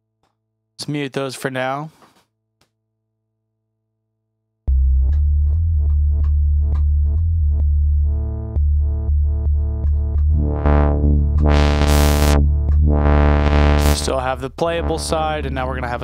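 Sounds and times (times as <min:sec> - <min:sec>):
sequenced synth notes: 0:04.7 - 0:16.0
sustained synth bass tone: 0:04.7 - 0:16.0
bright synth tone: 0:10.4 - 0:14.1.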